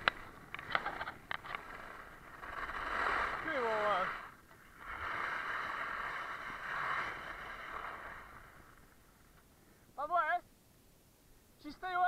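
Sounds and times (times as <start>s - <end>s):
skis scraping on icy snow: 0.0s - 9.4s.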